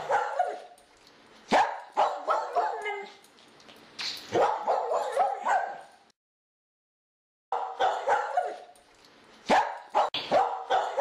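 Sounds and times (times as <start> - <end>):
dog barking and yipping: 0.0 - 0.8, 1.5 - 3.2, 4.3 - 6.0, 7.5 - 8.8, 9.4 - 11.0.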